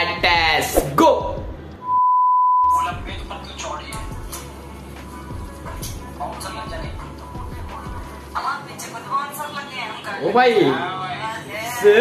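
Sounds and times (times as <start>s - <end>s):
electronic beep: 1.8s - 2.7s.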